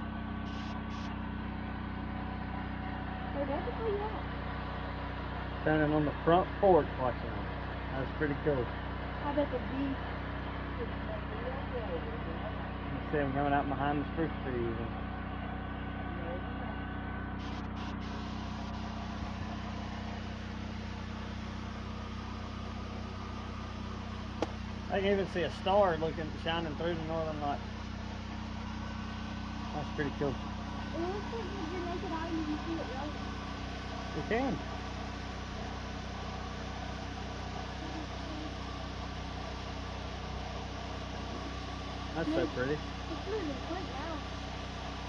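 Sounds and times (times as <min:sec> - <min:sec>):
vehicle engine idling: 0:00.0 - 0:45.0.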